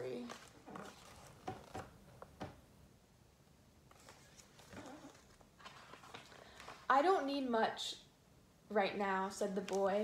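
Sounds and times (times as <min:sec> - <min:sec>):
book rustling and tapping: 0:03.9 - 0:06.9.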